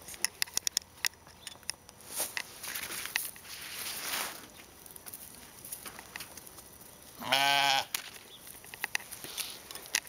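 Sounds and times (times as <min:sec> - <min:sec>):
soft rustle: 0:02.0 - 0:07.2, 0:08.0 - 0:10.0
sheep bleating: 0:07.2 - 0:07.9.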